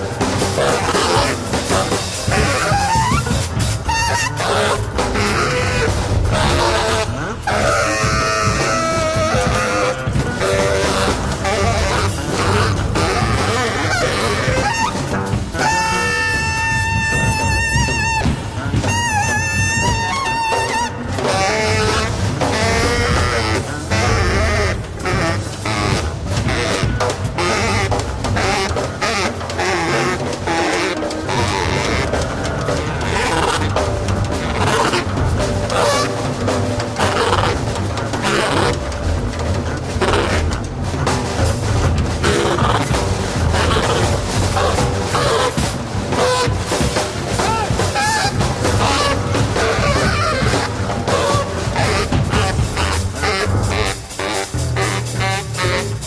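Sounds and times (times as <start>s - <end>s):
double basses: 0.0s - 56.0s
drums: 0.0s - 56.0s
saxophone high notes: 0.0s - 56.0s.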